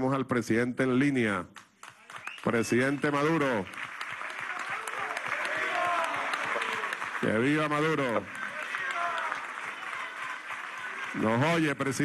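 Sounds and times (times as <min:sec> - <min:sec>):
audience applauding: 0:01.8 - 0:12.0
cheering voices: 0:04.2 - 0:12.0.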